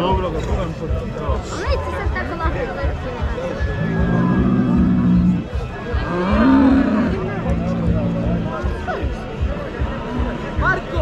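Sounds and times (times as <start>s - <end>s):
bull bellowing: 3.7s - 8.4s.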